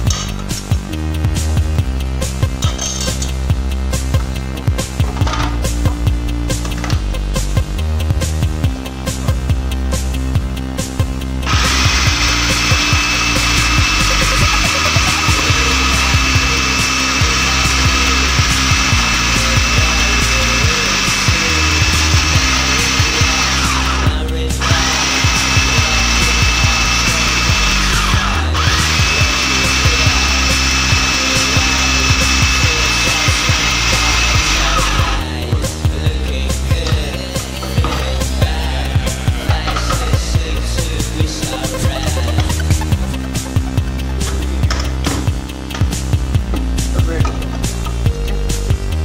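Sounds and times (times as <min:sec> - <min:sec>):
background music with bass line: 0:00.0 - 0:49.0
food processor motor grinding: 0:11.4 - 0:35.2.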